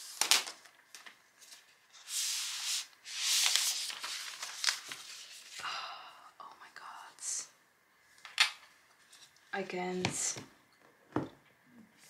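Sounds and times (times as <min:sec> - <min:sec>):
woman whispering: 0:05.7 - 0:07.6.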